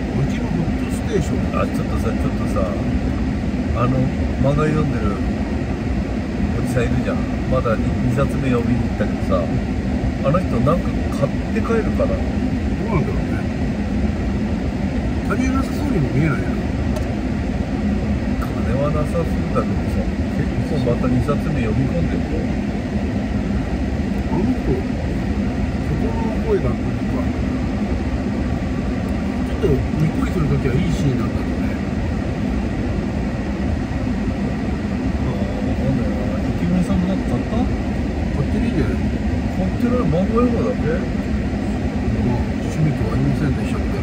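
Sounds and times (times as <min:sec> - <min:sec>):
car engine hum: 0:00.0 - 0:44.0.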